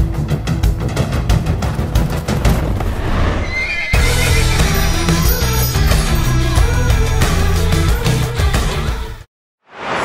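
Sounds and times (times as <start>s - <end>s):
music: 0.0s - 3.0s, 3.9s - 9.3s
horse whinnying: 3.2s - 4.8s.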